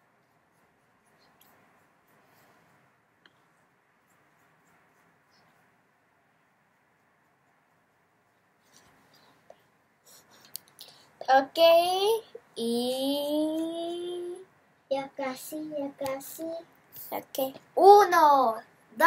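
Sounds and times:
faint scratchy rustles: 0.0 - 12.0.

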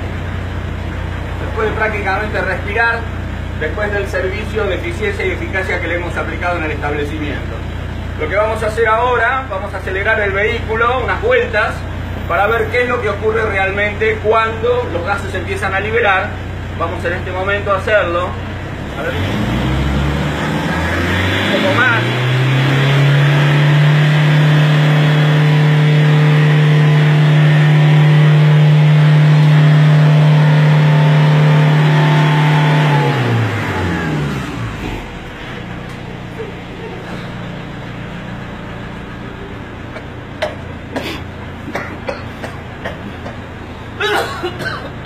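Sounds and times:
car engine revving and idling: 0.0 - 45.0.

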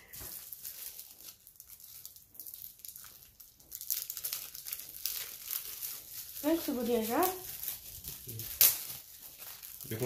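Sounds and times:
plastic wrapping crinkling and tearing: 0.0 - 10.0
sharp loud plastic crackle: 0.0 - 10.0.

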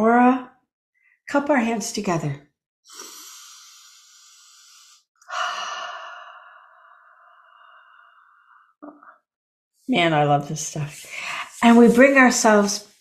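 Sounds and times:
woman breathing deeply: 2.9 - 8.8.

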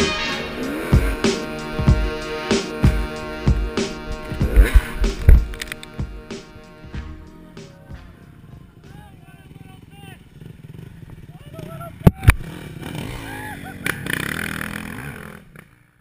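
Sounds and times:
dirt bike engine running: 0.0 - 16.0.

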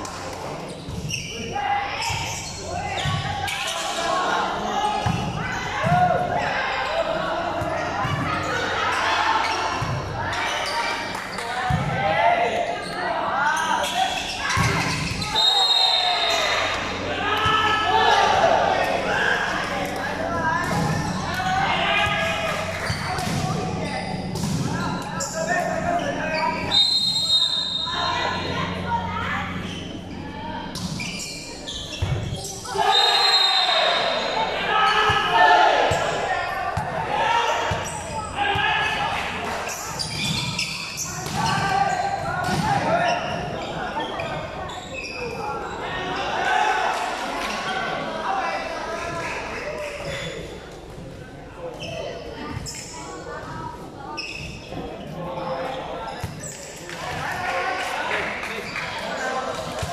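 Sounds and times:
people calling and chattering: 0.0 - 59.9.

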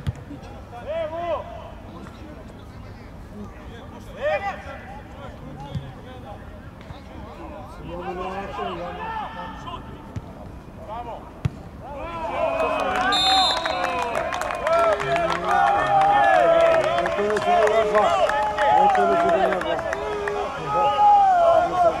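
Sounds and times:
men shouting and cheering: 11.8 - 22.0
short high whistle: 13.2 - 13.9.

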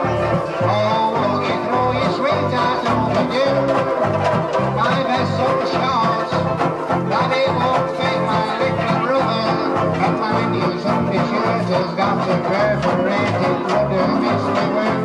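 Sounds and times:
man singing into a microphone: 0.0 - 4.0, 4.7 - 15.0
banjo ukuleles strummed: 0.0 - 15.0.

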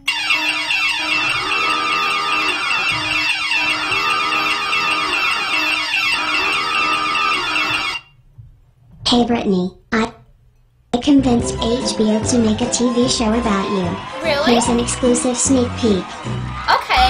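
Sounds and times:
alert music jingle: 0.0 - 8.1.

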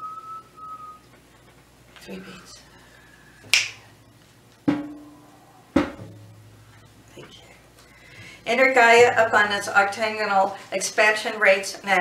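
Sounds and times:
finger snaps: 3.5 - 3.8.

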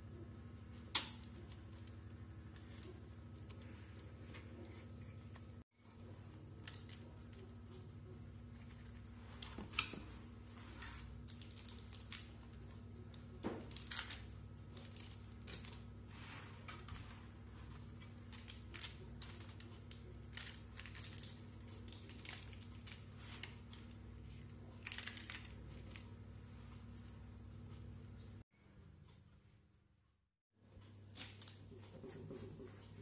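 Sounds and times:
low steady hum: 0.0 - 33.0.

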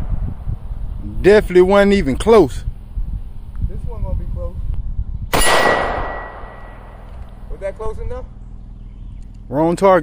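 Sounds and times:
rifle shot: 5.3 - 7.1
steel target ringing: 5.3 - 7.1.

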